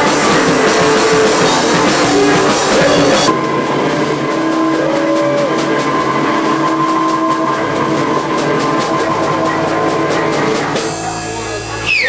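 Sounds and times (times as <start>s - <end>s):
distorted electric guitar drone: 0.0s - 12.0s
drum hits: 0.0s - 12.0s.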